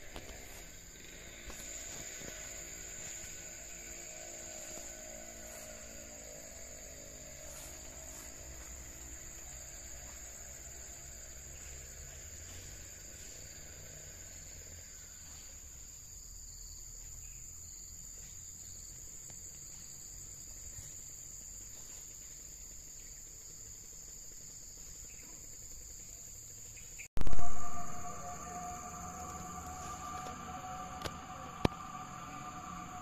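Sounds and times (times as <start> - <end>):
steady lower tones: 0.0 - 15.2, 27.2 - 33.0
insects droning: 0.0 - 33.0
low rumble: 27.2 - 33.0.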